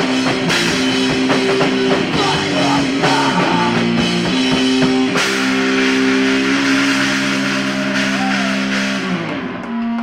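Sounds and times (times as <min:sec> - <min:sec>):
drum and cymbal hit: 0:00.0 - 0:10.0.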